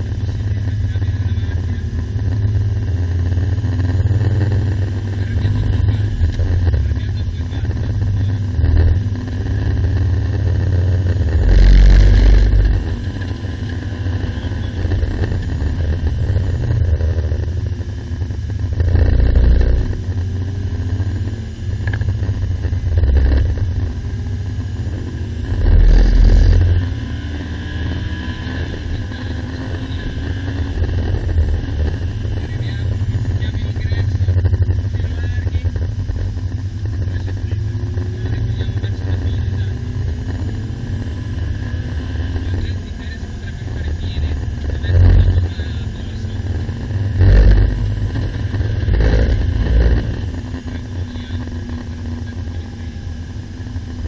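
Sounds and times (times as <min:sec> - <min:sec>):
car engine revving through gears: 0:00.0 - 0:54.0
road and wind noise: 0:00.0 - 0:54.0
loud low thumps: 0:18.5 - 0:20.3.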